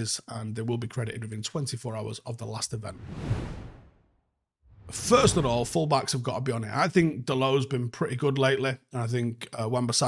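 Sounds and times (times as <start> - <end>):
short rising swish: 2.8 - 4.1, 4.7 - 5.7
whoosh sound effect: 2.8 - 4.1, 4.7 - 5.8.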